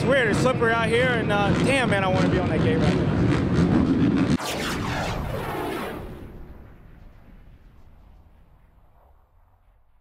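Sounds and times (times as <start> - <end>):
falling pitch sweep: 2.9 - 9.9.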